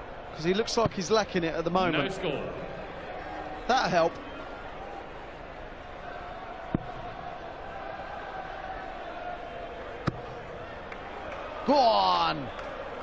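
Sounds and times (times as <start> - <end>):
crowd murmur: 1.6 - 11.8.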